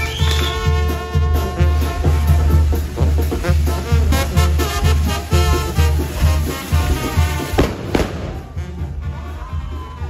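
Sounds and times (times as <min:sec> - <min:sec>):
firecrackers banging: 0:00.0 - 0:09.3
brass band playing dance music: 0:00.0 - 0:10.0.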